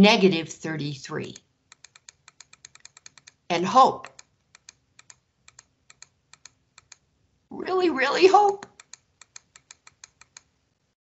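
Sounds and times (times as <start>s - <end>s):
keyboard key clicks: 1.7s - 3.4s, 4.0s - 7.0s, 8.6s - 10.5s.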